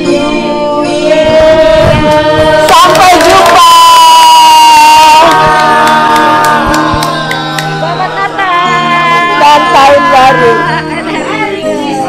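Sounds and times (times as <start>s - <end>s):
people cheering and shouting: 2.2s - 12.0s.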